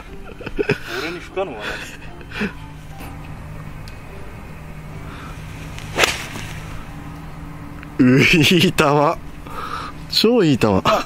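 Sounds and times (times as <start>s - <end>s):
golf club swishing: 5.3s - 7.0s
golf club striking ball: 5.5s - 7.9s.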